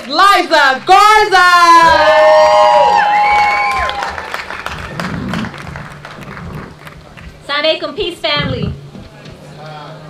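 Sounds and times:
audience applause: 0:01.8 - 0:07.5.

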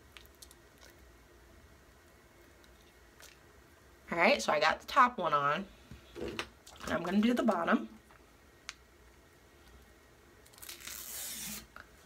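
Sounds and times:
strip peeling tearing rustle: 0:10.4 - 0:11.7.

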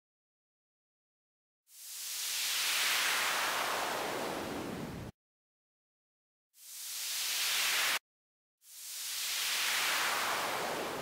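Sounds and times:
white noise filter sweep: 0:08.7 - 0:11.0.

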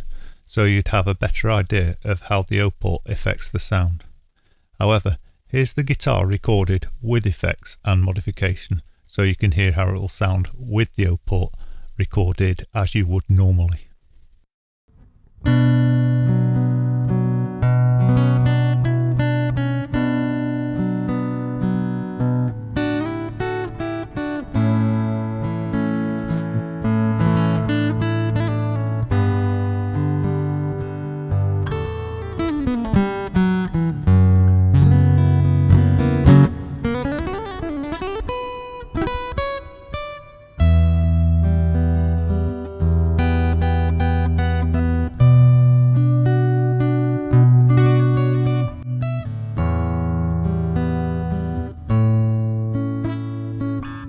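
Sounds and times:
fingerstyle acoustic guitar: 0:15.0 - 0:54.0.

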